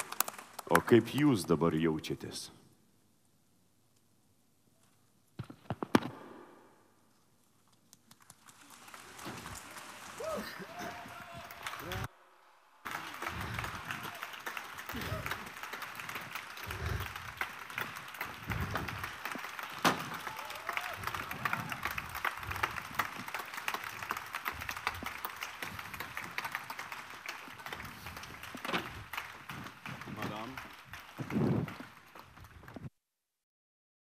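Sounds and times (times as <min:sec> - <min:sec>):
audience applauding: 0:00.0 - 0:01.5, 0:08.0 - 0:12.1, 0:12.8 - 0:32.9
sharp crack: 0:19.8 - 0:20.2.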